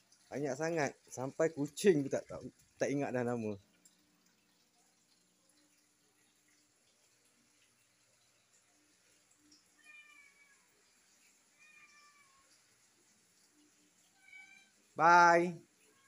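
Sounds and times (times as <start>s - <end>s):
faint high cat meows: 9.7s - 10.9s, 11.5s - 12.6s, 14.1s - 14.9s.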